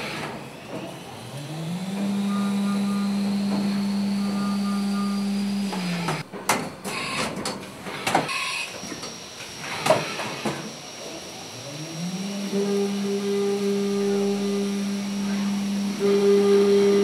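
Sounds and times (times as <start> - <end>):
milling machine cutting metal: 0.0 - 17.0.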